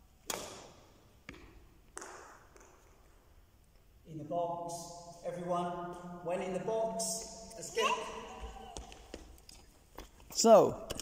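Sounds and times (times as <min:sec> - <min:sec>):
racket striking shuttlecock: 0:00.2 - 0:02.9.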